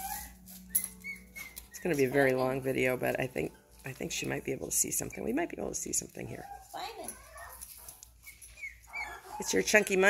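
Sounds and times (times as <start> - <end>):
puppy whimpering: 0.0 - 2.3, 6.3 - 9.8.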